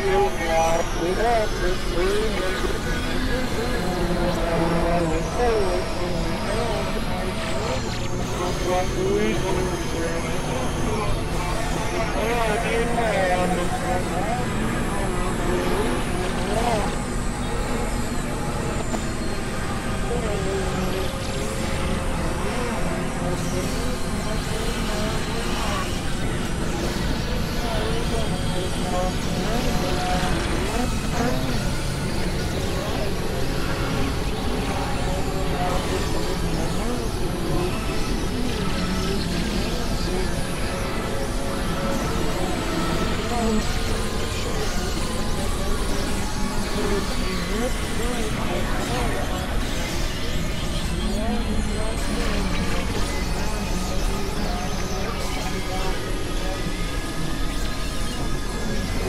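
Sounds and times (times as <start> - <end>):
synthesizer drone and hiss: 0.0 - 59.0.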